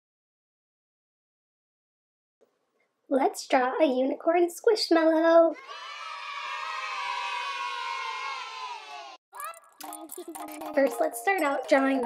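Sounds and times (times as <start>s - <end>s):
children cheering yay: 5.6s - 9.6s.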